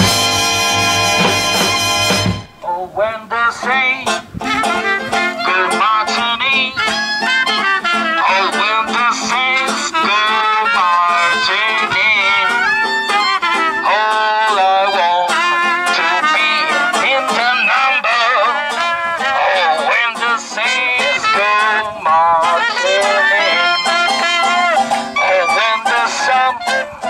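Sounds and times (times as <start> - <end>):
wavering lead melody: 0.0 - 2.6, 4.1 - 11.4, 12.3 - 17.5, 22.6 - 27.0
plucked banjo: 0.0 - 2.8, 3.6 - 27.0
swing music: 0.0 - 27.0.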